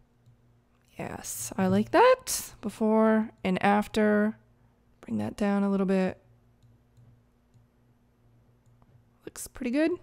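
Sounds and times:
steady low hum: 0.0 - 10.0
computer mouse clicks: 6.6 - 7.7, 8.6 - 9.0.

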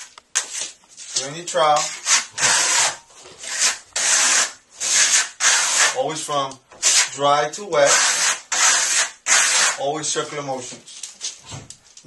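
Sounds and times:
trowel scraping plaster on wall: 0.4 - 6.1, 6.8 - 7.2, 7.8 - 10.0.

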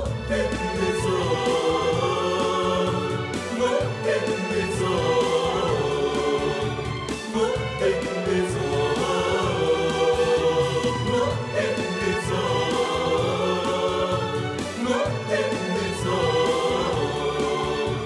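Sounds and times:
choir singing long notes: 0.0 - 18.0
instrumental backing music: 0.0 - 18.0.

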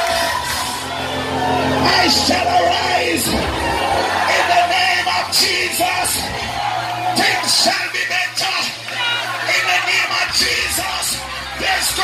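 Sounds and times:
congregation shouting: 0.0 - 12.0
live gospel music: 0.0 - 12.0.

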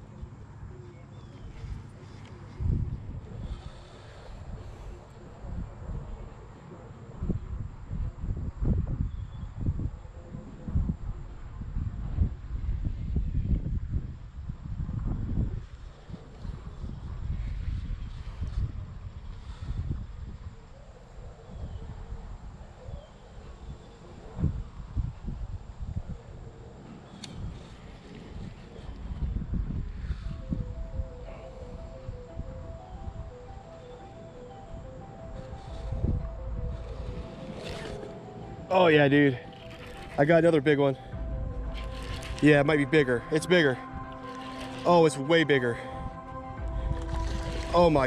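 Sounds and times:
wind buffeting microphone: 1.3 - 20.6, 23.5 - 33.5, 34.6 - 44.8, 45.9 - 48.0
background music of held notes: 30.1 - 48.0.

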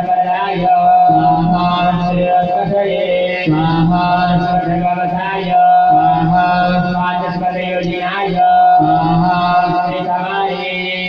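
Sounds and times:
voices chanting mantras: 0.0 - 11.0.

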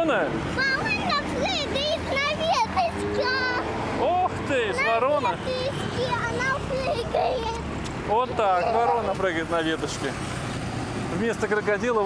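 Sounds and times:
girl talking: 0.5 - 3.8, 4.8 - 7.7.

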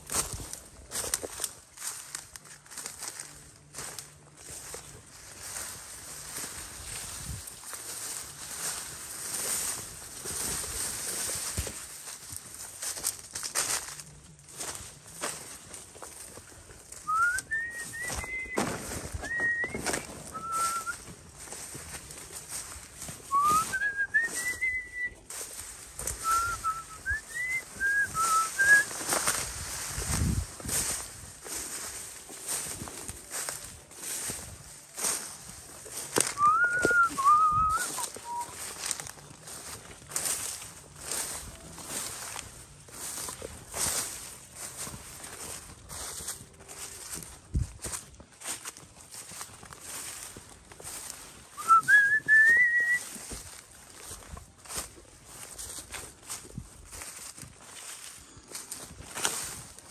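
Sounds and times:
person whistling: 17.0 - 21.0, 23.2 - 25.2, 26.0 - 29.0, 36.3 - 38.6, 51.5 - 53.2.

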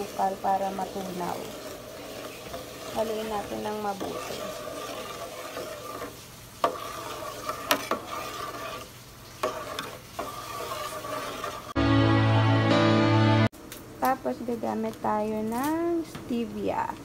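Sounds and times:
spoon scraping in metal pot: 0.0 - 11.8
loud music: 11.8 - 13.5.

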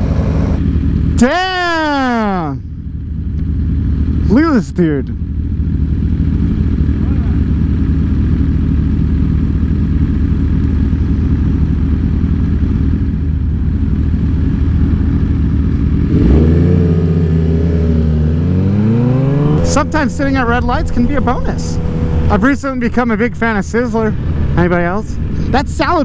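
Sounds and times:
motorbike engine idling and revving: 0.0 - 26.0.

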